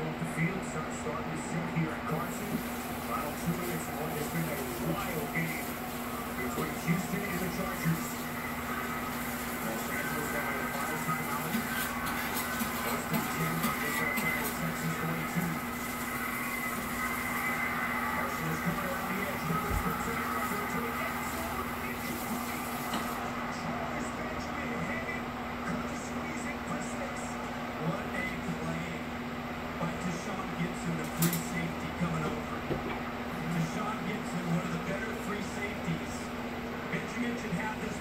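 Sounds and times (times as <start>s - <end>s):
muffled television speech: 0.0s - 38.0s.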